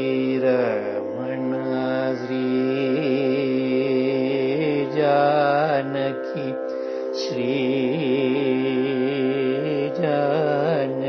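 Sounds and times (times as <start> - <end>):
person singing long wavering note: 0.0 - 11.0.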